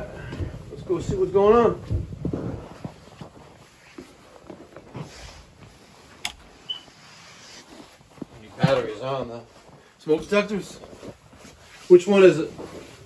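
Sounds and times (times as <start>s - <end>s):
footsteps: 0.0s - 13.0s.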